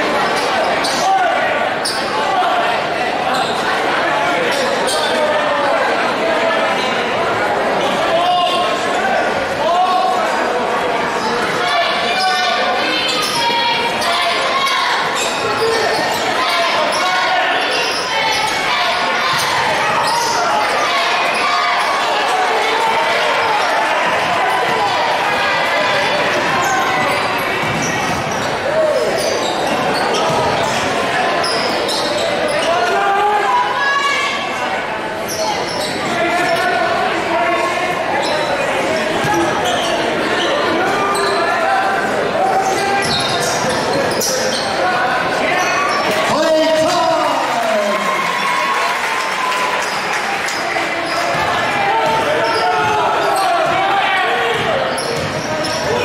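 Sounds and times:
spectators talking and calling out: 0:00.0 - 0:56.0.

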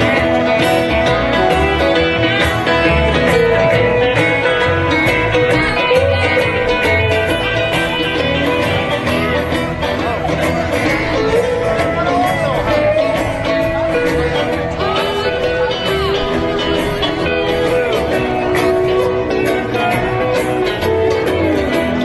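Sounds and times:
bass notes: 0:00.0 - 0:22.0
country band playing: 0:00.0 - 0:22.0
guitars plucked and strummed: 0:00.0 - 0:22.0.

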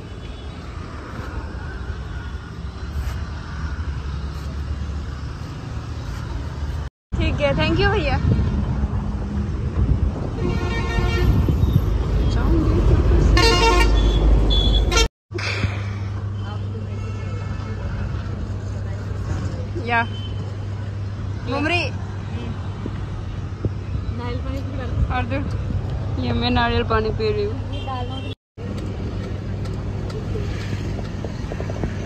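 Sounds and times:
road traffic: 0:00.0 - 0:32.0
vehicle horns honking: 0:10.4 - 0:11.9, 0:13.4 - 0:15.1, 0:27.7 - 0:28.4.

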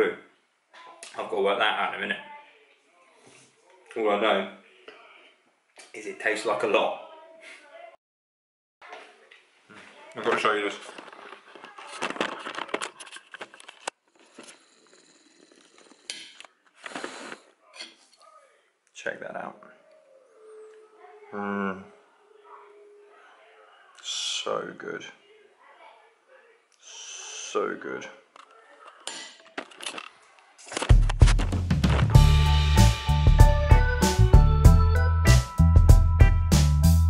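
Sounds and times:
camera handling clicks and rustling: 0:10.9 - 0:14.5, 0:28.4 - 0:30.1
music with heavy drum beat: 0:30.9 - 0:37.0.

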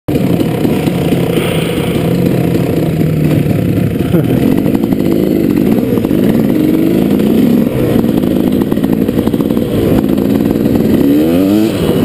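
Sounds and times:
dirt bike engine running: 0:00.1 - 0:12.0.

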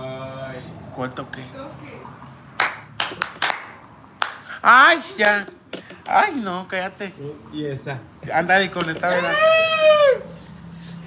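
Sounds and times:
person clapping hands: 0:02.6 - 0:04.5.

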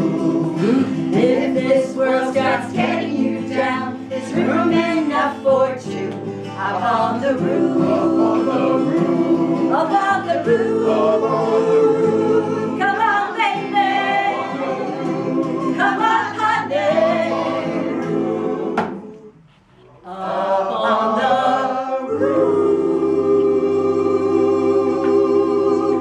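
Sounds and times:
mixed choir singing: 0:00.0 - 0:26.0.

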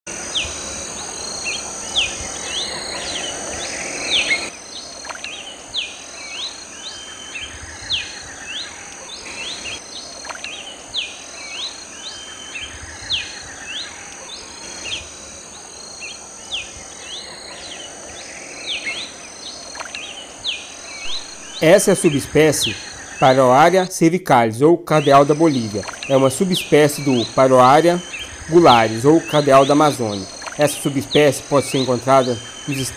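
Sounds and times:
high insect buzz: 0:00.1 - 0:23.8, 0:24.9 - 0:32.9
bird singing whistled notes: 0:18.6 - 0:23.5, 0:24.9 - 0:32.9.

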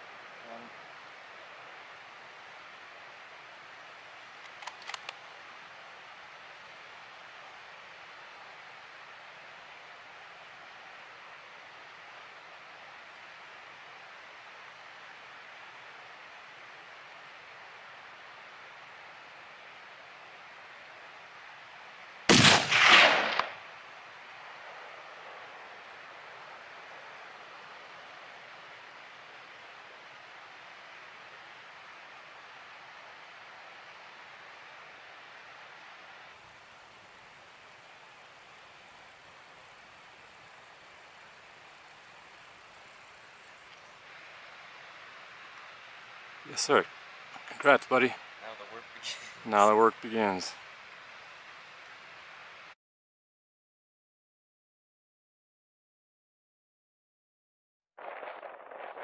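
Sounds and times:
faint hiss: 0:00.0 - 0:52.8
quick faint clicks: 0:04.4 - 0:05.2
rifle shot: 0:22.3 - 0:23.6.

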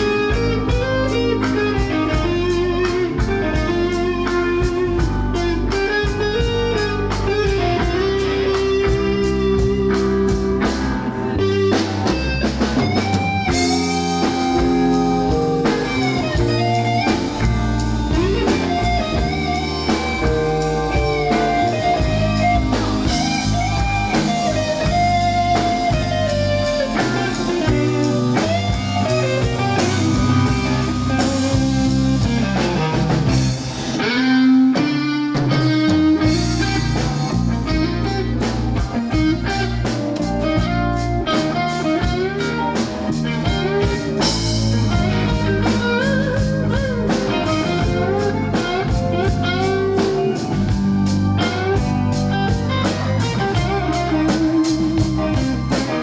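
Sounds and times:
bass guitar: 0:00.0 - 0:56.0
drum kit: 0:00.0 - 0:56.0
electric guitar lead notes: 0:00.0 - 0:56.0.

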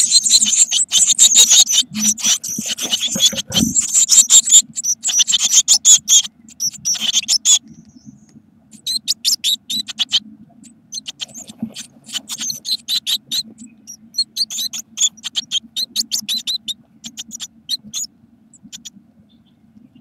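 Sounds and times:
nestlings cheeping: 0:00.0 - 0:19.5.

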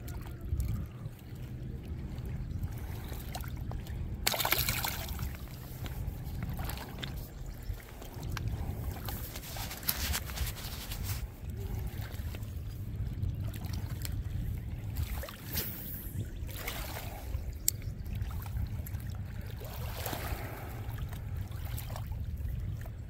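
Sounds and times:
steady low rumble: 0:00.0 - 0:23.0
waves lapping on rocky shore: 0:02.7 - 0:12.4, 0:19.1 - 0:22.1
water splash: 0:04.2 - 0:05.4.

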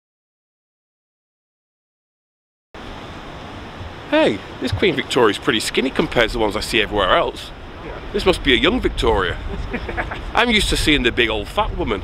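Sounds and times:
outdoor city background hiss: 0:02.8 - 0:12.0.

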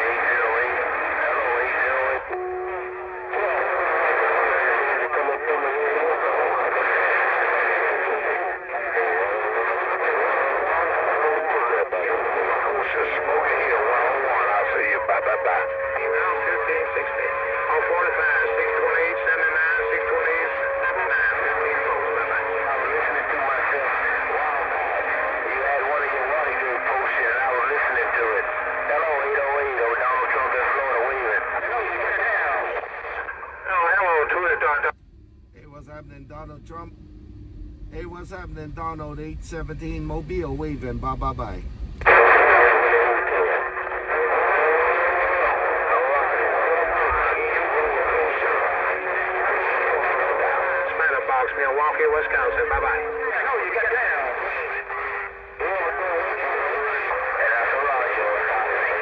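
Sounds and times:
garbled radio voices: 0:00.0 - 0:35.0, 0:35.6 - 0:37.0, 0:37.9 - 0:59.0.

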